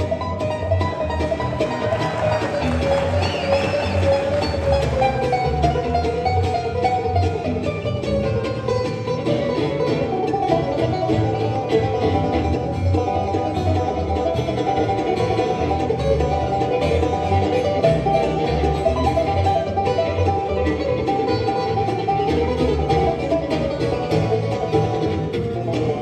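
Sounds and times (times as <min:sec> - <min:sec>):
picked banjo: 0:00.0 - 0:26.0
strummed acoustic guitar: 0:00.0 - 0:26.0
upright bass line: 0:00.0 - 0:26.0.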